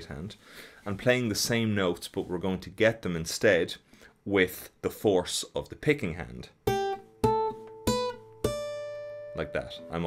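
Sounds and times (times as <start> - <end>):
acoustic guitar tapped notes: 6.6 - 9.9.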